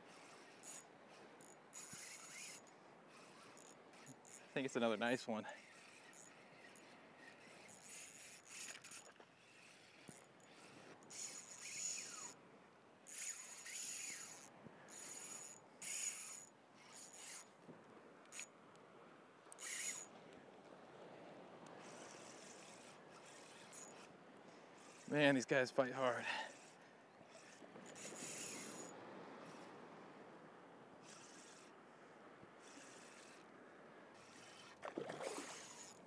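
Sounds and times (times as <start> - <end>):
fishing reel whirring: 0.1 - 12.4, 13.0 - 17.5, 18.2 - 18.5, 19.5 - 20.1, 21.7 - 25.4, 26.1 - 29.7, 31.0 - 31.8, 32.6 - 33.5, 34.1 - 36.0.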